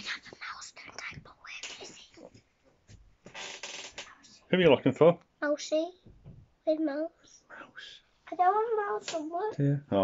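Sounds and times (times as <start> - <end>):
child whispering: 0.0 - 2.4, 7.0 - 9.2.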